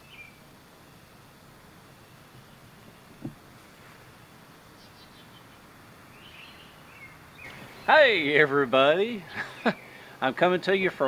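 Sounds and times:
faint outdoor ambience: 0.0s - 11.0s
high bird chirps: 6.2s - 7.9s.

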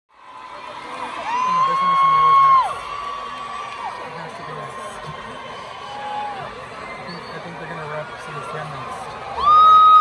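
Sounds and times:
concert crowd screaming and cheering: 0.1s - 10.0s.

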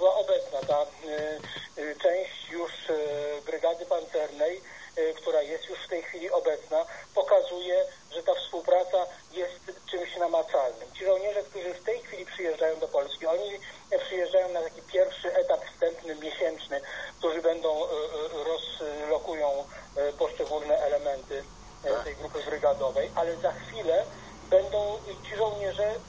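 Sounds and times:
speech through small speaker: 0.0s - 26.0s.

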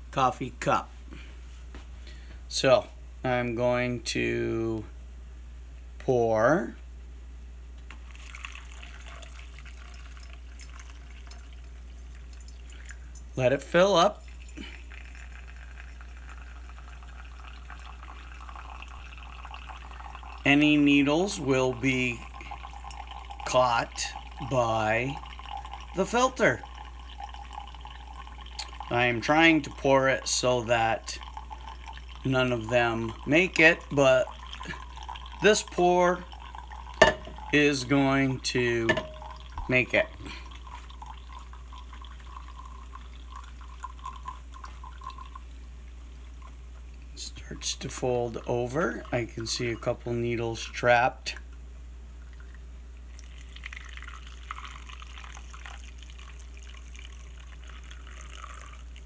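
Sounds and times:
liquid trickling and dripping: 7.9s - 51.6s, 52.2s - 59.0s.

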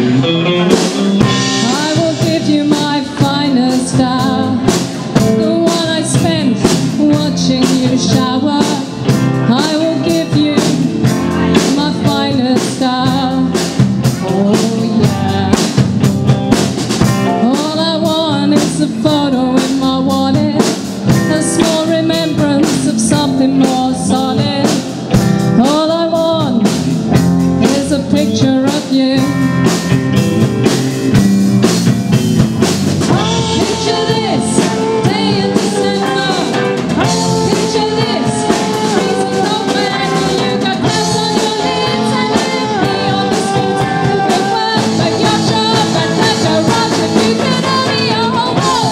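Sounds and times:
drum kit beat: 0.0s - 48.9s
electric guitar: 0.0s - 48.9s
woman singing lead: 0.7s - 16.2s, 17.0s - 30.0s, 33.0s - 48.9s.

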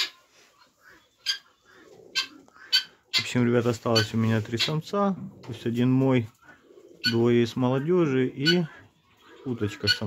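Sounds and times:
ducks giving high-pitched calls: 0.8s - 4.8s, 7.0s - 7.3s, 8.4s - 10.0s.

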